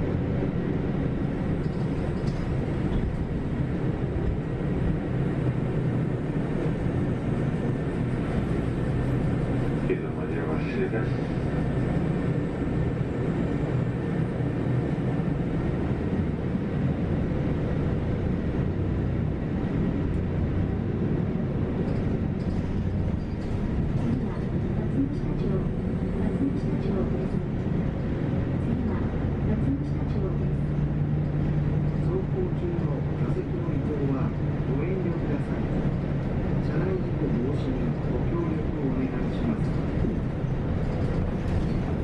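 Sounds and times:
bus engine: 0.0 - 42.0
road noise: 0.0 - 42.0.

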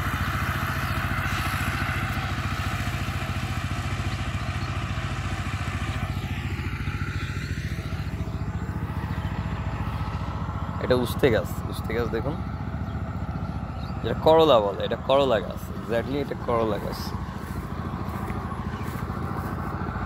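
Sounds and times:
power tiller engine chugging: 0.0 - 20.0.

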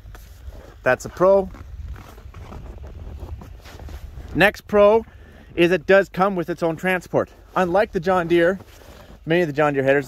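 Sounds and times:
wind on microphone: 1.5 - 5.9.

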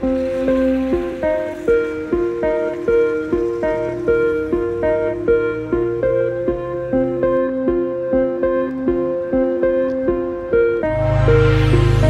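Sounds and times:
plucked string instrument music: 0.0 - 12.0.

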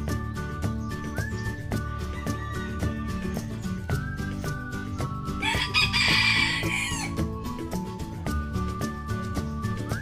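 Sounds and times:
background music with steady beat: 0.0 - 10.0
rooster crowing: 2.1 - 3.4, 5.4 - 7.2.

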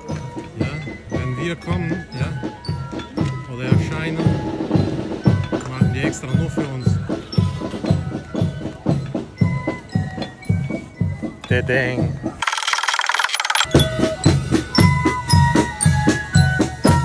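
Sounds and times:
marching band flutes and drums: 0.0 - 12.4, 13.7 - 17.0.

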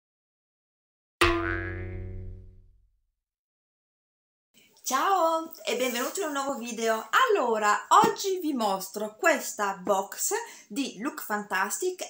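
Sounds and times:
ringing pitched sound effect: 1.2 - 2.7.

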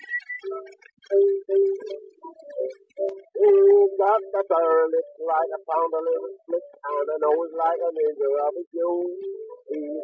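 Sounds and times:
person singing: 3.0 - 10.0.

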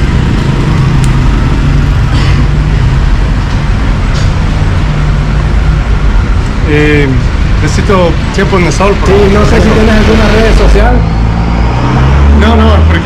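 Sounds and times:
heavy vehicle engine drone: 0.0 - 13.0
road traffic noise: 0.0 - 13.0.

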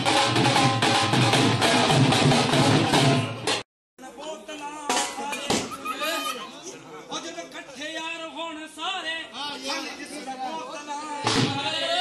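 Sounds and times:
dhol drums playing: 0.0 - 3.6.

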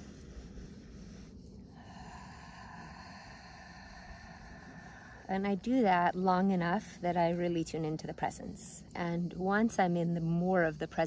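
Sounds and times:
woman breathing slowly: 0.0 - 5.8
low wind rumble: 0.0 - 11.0.

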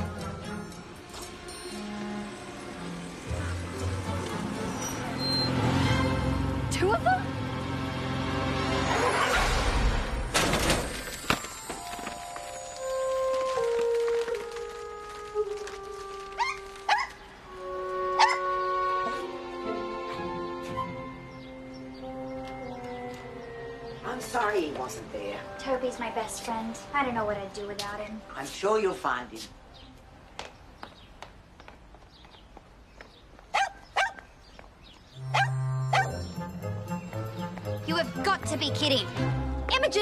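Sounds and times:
background music: 0.0 - 10.4, 11.1 - 29.9, 35.2 - 40.0
small dog barking: 16.4 - 17.2, 18.2 - 18.5, 33.5 - 34.2, 35.3 - 36.2.

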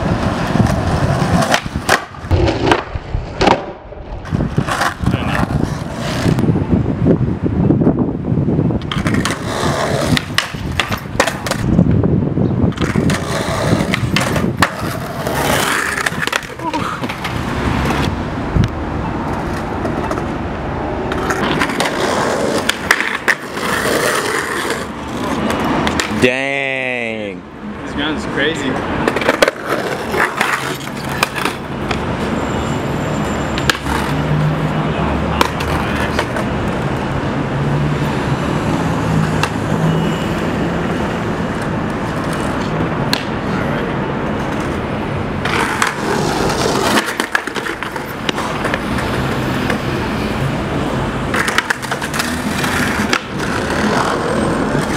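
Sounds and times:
skateboard wheels rolling on tiles: 0.0 - 6.5, 8.8 - 11.7, 12.7 - 26.2, 29.0 - 32.4, 35.4 - 39.8, 40.8 - 54.9
skateboard deck clacking: 0.1 - 6.3, 8.8 - 11.7, 12.7 - 20.4, 21.0 - 26.2, 29.0 - 32.1, 41.6 - 43.5, 45.4 - 49.9, 51.3 - 54.9.

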